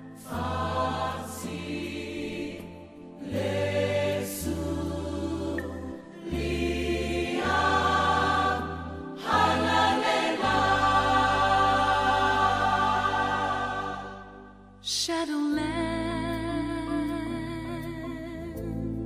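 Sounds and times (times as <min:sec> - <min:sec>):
choir singing held chords: 0:00.0 - 0:14.8.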